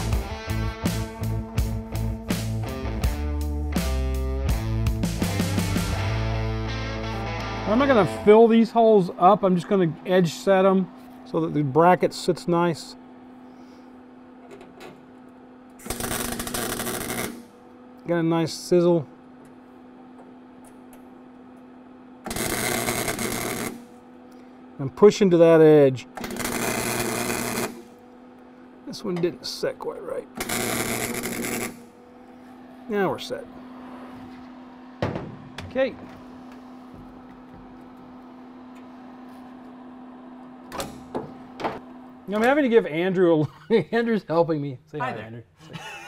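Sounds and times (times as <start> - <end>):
steady low hum: 0.0 - 46.0
faint shop room noise: 7.7 - 45.6
welder arc burning: 15.7 - 17.8, 22.2 - 24.0, 25.9 - 28.5, 30.3 - 32.1.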